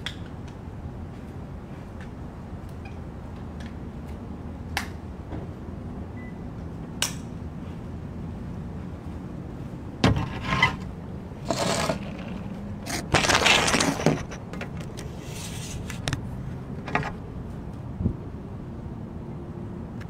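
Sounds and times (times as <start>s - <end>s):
scraping and rustling: 10.1s - 16.1s.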